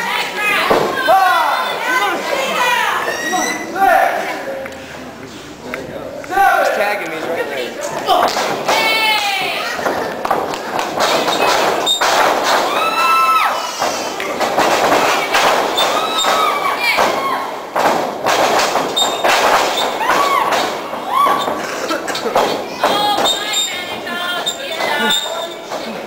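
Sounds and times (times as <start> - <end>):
voices shouting: 0.0 - 4.4, 14.9 - 17.7, 19.7 - 21.6.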